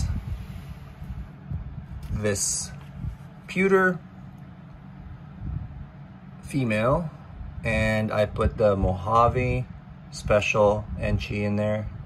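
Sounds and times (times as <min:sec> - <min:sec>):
faint room hum: 0:00.0 - 0:12.0
microphone handling rumble: 0:00.0 - 0:12.0.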